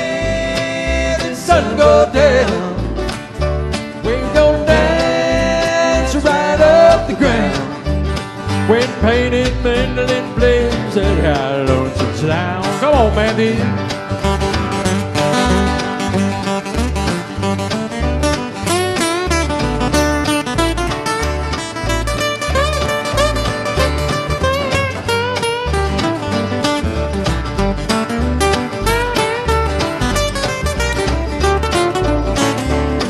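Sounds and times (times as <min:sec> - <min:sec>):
plucked lead line bending notes: 0:00.0 - 0:33.0
strummed acoustic guitars: 0:00.0 - 0:33.0
upright bass: 0:00.0 - 0:33.0.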